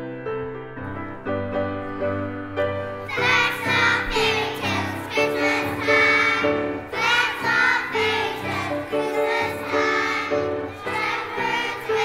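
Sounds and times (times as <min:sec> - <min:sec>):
children's choir singing: 0:02.7 - 0:12.0.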